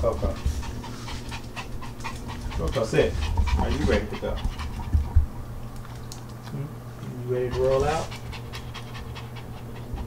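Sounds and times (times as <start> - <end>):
small dog panting: 0.0 - 6.4, 7.1 - 10.0.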